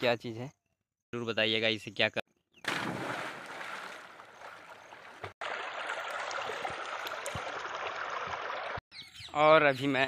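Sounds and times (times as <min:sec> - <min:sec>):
water splashing from swimmer: 0:02.7 - 0:08.8.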